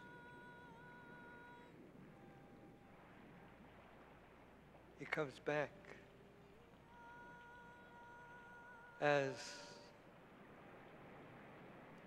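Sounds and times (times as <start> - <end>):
faint steady high tone: 0.0 - 4.0, 5.0 - 10.1
faint low hum: 0.0 - 12.0.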